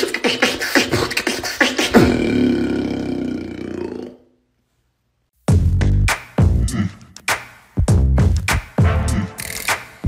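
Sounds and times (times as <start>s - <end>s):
beatboxer buzzing vocal bass: 0.0s - 4.2s, 6.4s - 7.2s.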